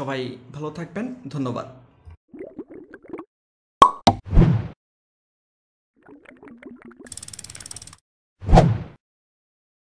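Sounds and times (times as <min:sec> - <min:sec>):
ratchet-like clicks: 0:07.1 - 0:08.0.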